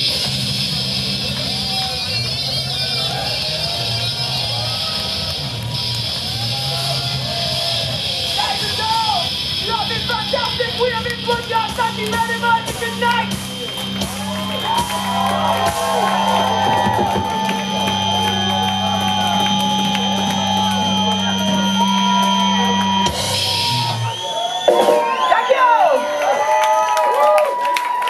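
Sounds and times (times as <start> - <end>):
band chord ringing through amplifiers: 0.0 - 25.6
crowd cheering and whistling: 0.0 - 28.0.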